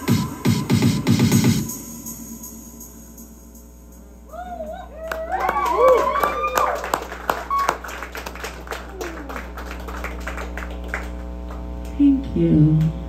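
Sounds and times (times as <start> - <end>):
amplifier electrical hum: 2.2 - 13.0
crowd clapping and whooping: 4.3 - 11.7.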